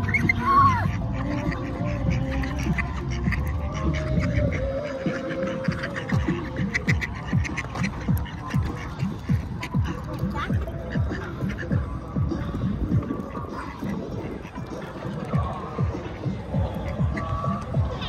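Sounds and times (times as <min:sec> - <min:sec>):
ducks quacking: 0:00.0 - 0:18.0
music playing: 0:00.0 - 0:18.0.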